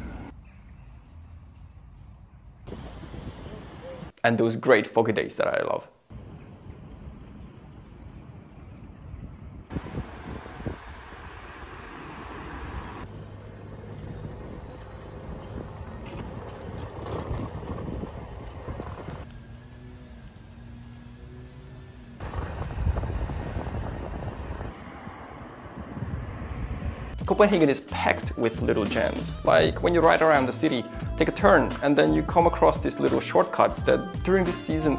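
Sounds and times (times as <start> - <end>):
outdoor background noise: 0.0 - 27.4
wind on microphone: 1.8 - 4.1, 6.2 - 19.3, 22.2 - 27.3.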